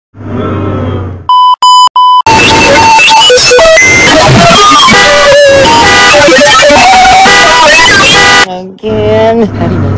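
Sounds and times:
electronic beeps: 0:01.3 - 0:08.5.

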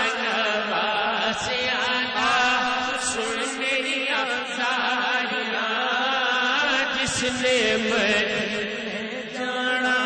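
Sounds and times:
man singing into a microphone: 0:00.0 - 0:10.0.

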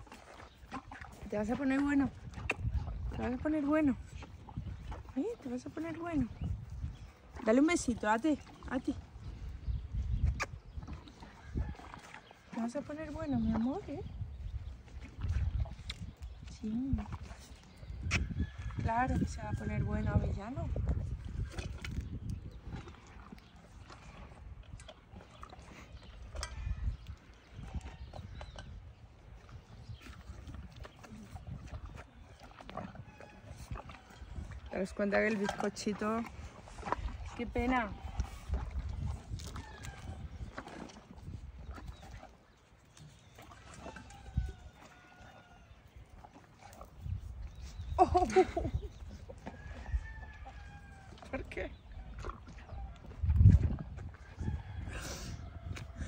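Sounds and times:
horse chewing treats: 0:00.0 - 0:56.0
wind rumble on microphone: 0:00.0 - 0:56.0.

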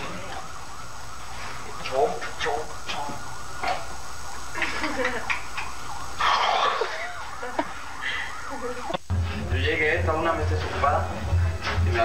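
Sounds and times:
siren sweeping rapidly: 0:00.0 - 0:11.1
steady low hum: 0:00.0 - 0:12.0.

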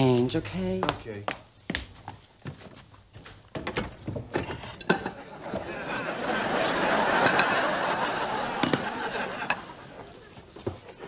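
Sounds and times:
wine glasses clinking: 0:08.5 - 0:09.6.

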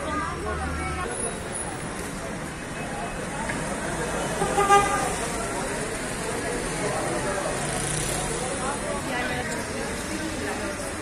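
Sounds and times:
crowd chatter: 0:00.0 - 0:11.0
traffic: 0:00.0 - 0:11.0
car horn toot: 0:04.4 - 0:05.1.

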